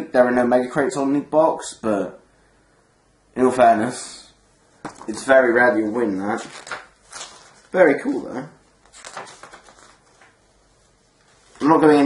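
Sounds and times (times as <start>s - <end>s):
paper pages rustling: 4.8s - 12.0s.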